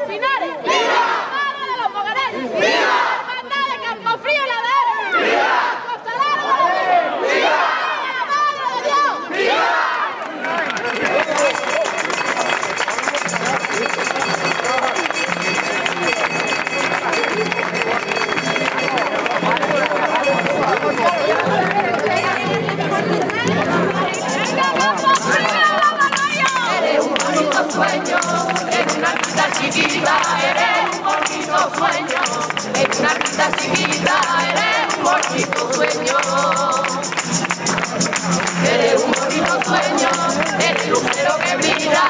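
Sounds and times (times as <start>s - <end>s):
crowd shouting and chanting: 0.0s - 12.6s, 13.4s - 42.0s
music: 11.3s - 42.0s.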